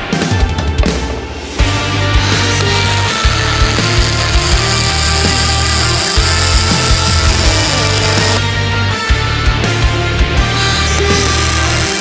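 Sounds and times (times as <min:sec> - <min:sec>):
rock music: 0:00.0 - 0:12.0
welding arc hissing: 0:02.3 - 0:08.4, 0:11.0 - 0:12.0.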